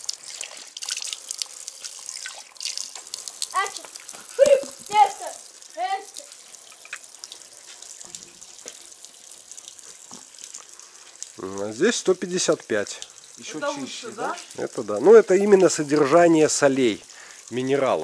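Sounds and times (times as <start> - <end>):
water trickling into a barrel: 0.0 - 18.0.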